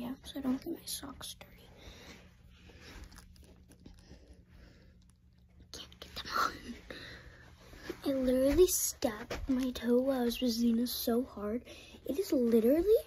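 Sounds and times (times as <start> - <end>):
low background hum: 0.0 - 13.0.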